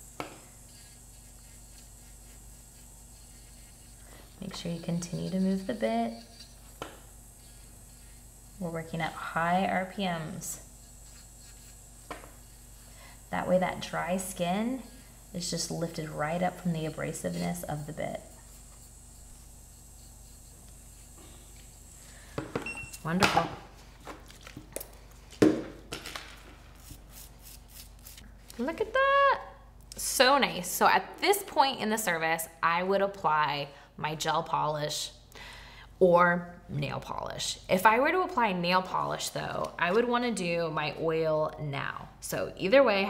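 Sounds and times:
electric nail file humming: 0.0s - 23.5s, 26.8s - 28.2s.

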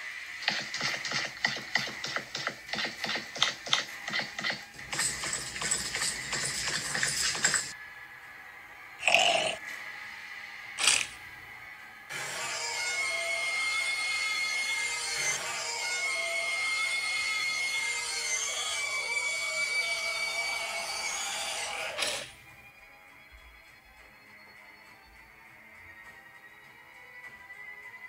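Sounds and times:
horror film music: 0.0s - 28.0s.

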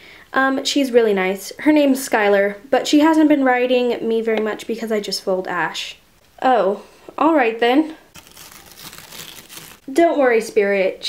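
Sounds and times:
faint crinkling rustle: 8.1s - 9.9s.

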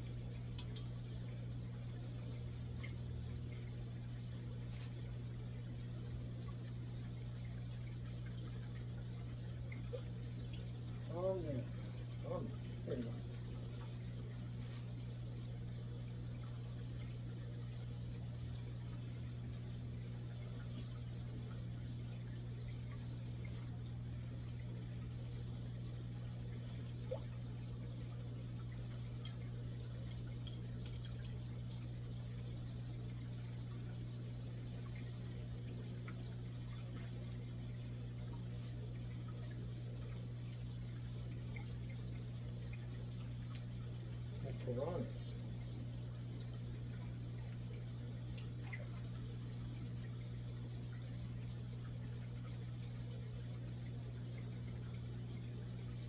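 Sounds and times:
aquarium pump humming: 0.0s - 56.0s
water trickling and bubbling: 0.0s - 56.0s.

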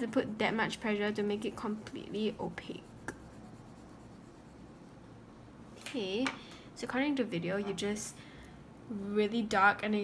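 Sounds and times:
oil pastel rubbing on paper: 0.9s - 4.9s.

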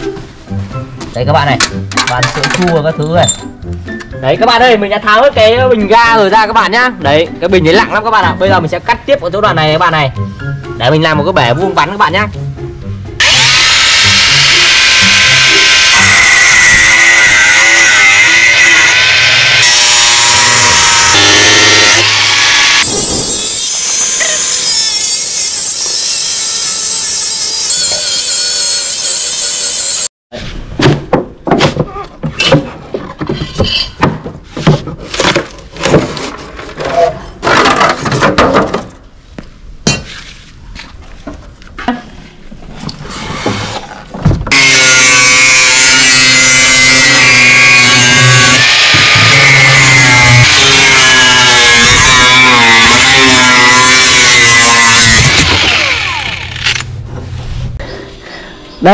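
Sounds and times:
angle grinder cutting sheet metal: 13.2s - 30.1s, 44.5s - 56.9s.

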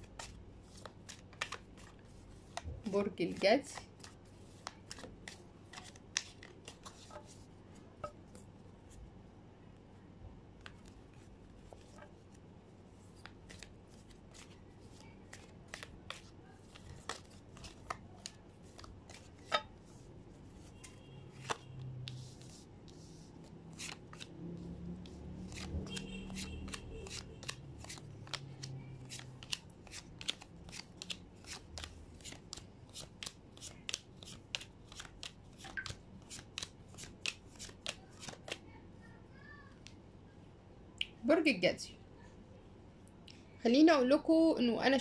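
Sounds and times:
cards shuffling: 0.0s - 7.4s, 13.1s - 19.6s, 21.4s - 24.4s, 25.0s - 38.6s.

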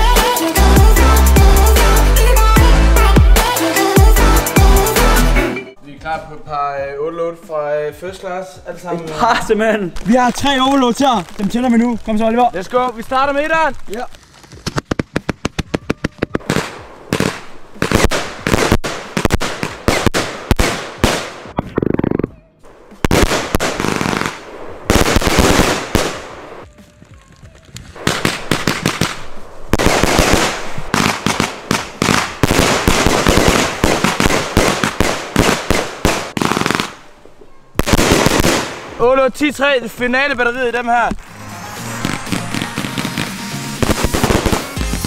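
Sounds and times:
firework launches and aerial bangs: 23.0s - 26.5s, 28.0s - 37.0s, 37.8s - 39.0s, 41.1s - 45.0s.

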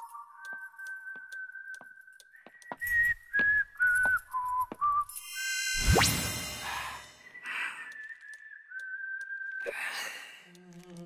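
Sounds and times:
person whistling: 0.0s - 10.0s.

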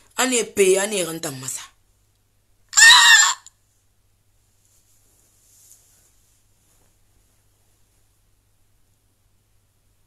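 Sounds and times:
woman squealing: 2.8s - 3.5s.

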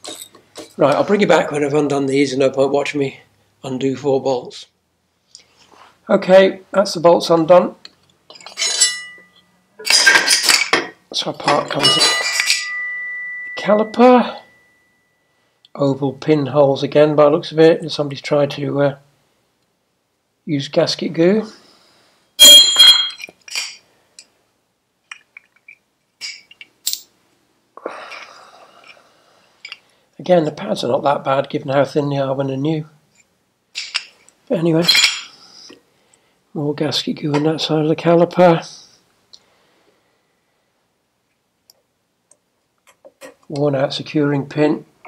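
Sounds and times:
metallic clink: 0.0s - 0.8s, 8.3s - 10.8s, 11.6s - 15.3s, 22.4s - 23.8s, 25.1s - 27.1s, 34.8s - 35.4s.

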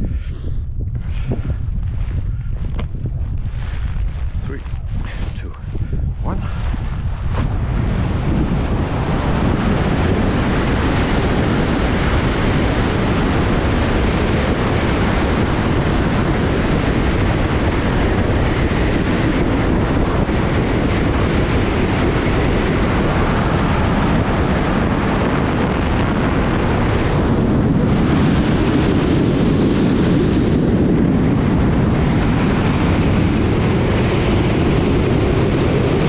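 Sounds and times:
wind rush on microphone: 0.0s - 36.0s.

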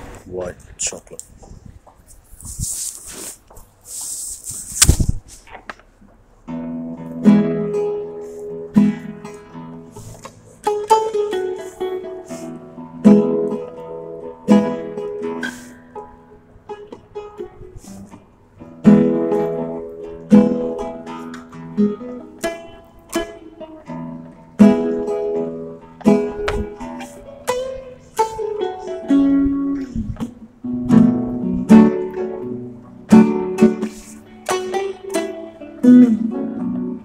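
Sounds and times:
handling noise: 0.0s - 6.3s
acoustic strings strummed: 6.4s - 37.0s.

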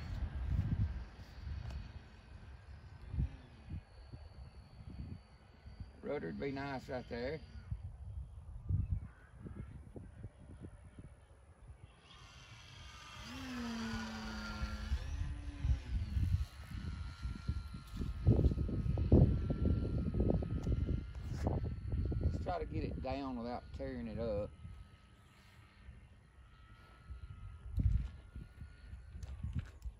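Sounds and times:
wind buffeting microphone: 0.0s - 11.2s, 12.9s - 25.8s, 26.5s - 29.9s
model airplane motor whine: 0.0s - 29.9s.

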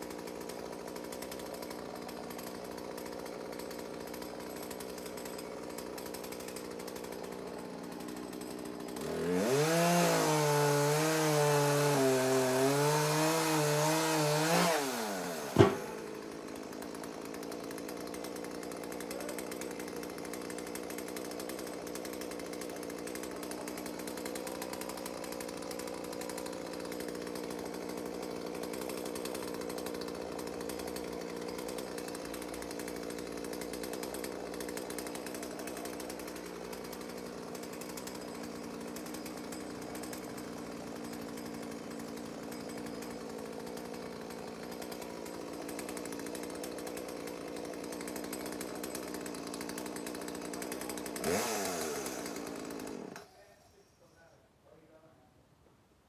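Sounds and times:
chainsaw cutting: 0.0s - 55.0s.

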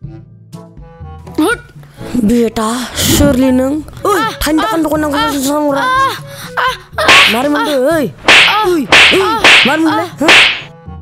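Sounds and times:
sharp slaps: 7.0s - 7.6s, 8.2s - 10.8s.

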